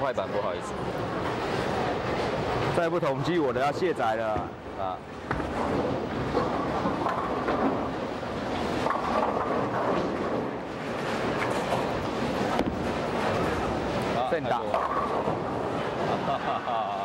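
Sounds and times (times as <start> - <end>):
bowling balls rolling down lanes: 0.0 - 16.5
knocks of balls or pins: 5.2 - 8.0.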